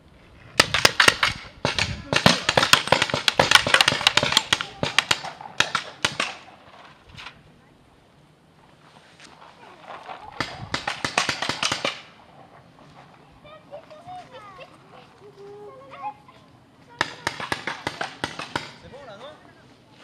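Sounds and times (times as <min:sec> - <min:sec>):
paintball markers firing bursts: 0:00.6 - 0:06.5, 0:10.4 - 0:12.1, 0:17.0 - 0:18.8.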